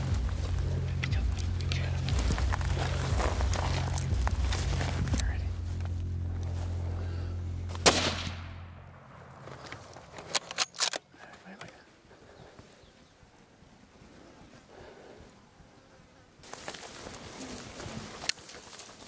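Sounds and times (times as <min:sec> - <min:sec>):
rifle shot with echo: 0:07.7 - 0:09.9.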